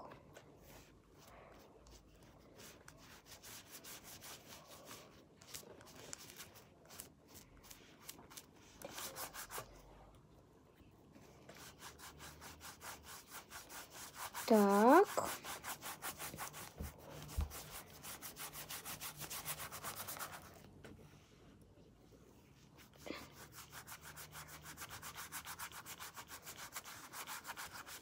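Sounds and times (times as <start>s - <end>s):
drawing tool scrubbing on paper: 0.6s - 9.8s, 11.5s - 20.6s, 22.8s - 28.0s.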